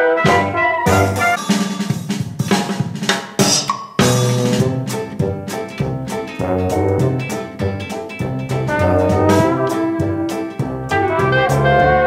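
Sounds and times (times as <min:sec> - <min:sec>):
upbeat jazz music with brass: 0:00.0 - 0:02.8, 0:03.4 - 0:12.0
snare cymbal and hi-hat hits: 0:00.3 - 0:11.8.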